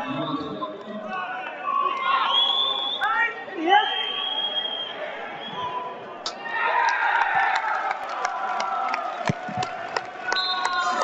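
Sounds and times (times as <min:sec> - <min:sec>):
people shouting and cheering: 0:00.0 - 0:11.0
high whistle: 0:02.1 - 0:05.8.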